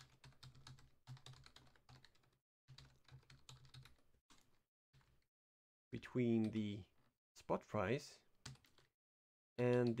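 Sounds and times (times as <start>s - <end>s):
faint keyboard typing: 0.0s - 5.3s, 6.3s - 6.8s, 8.3s - 8.9s, 9.6s - 10.0s.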